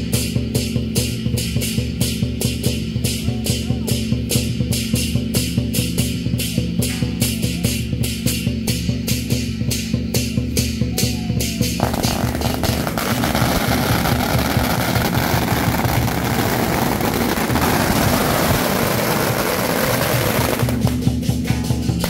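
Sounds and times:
music playing: 10.2 - 22.0
firecrackers crackling: 11.6 - 22.0.

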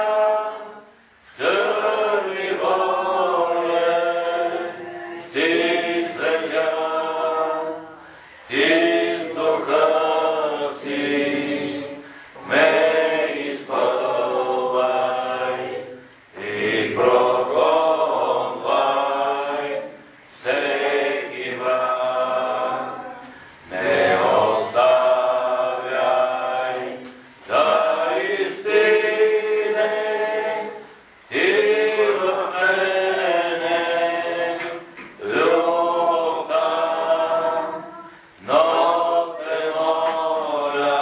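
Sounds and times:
congregation singing: 0.0 - 41.0.

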